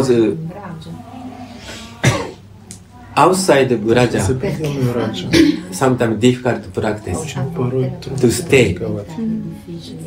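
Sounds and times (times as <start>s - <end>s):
sharp cough: 2.0s - 2.5s, 5.3s - 5.7s.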